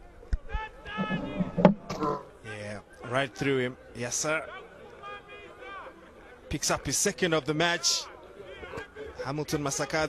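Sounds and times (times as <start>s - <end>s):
raised voices of crowd: 0.0s - 10.0s.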